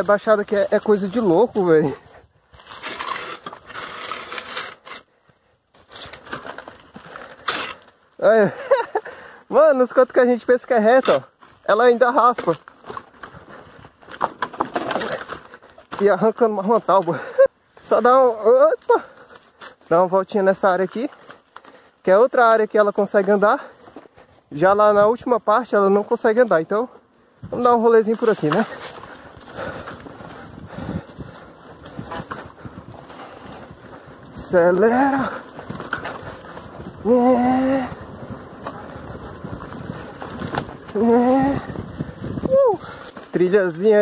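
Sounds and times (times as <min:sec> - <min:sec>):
motorcycle frame rattling: 0:10.0 - 0:17.2, 0:27.6 - 0:44.0.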